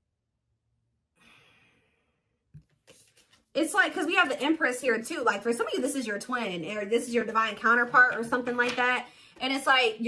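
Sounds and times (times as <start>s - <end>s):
woman exhaling softly: 1.2s - 2.1s.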